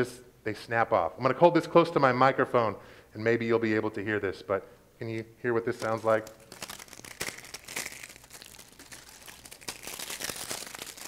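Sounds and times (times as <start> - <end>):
dry branch crackling and snapping: 5.8 - 11.0.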